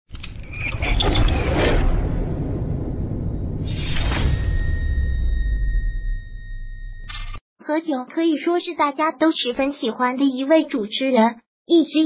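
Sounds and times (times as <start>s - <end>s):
low rumble: 0.8s - 7.1s.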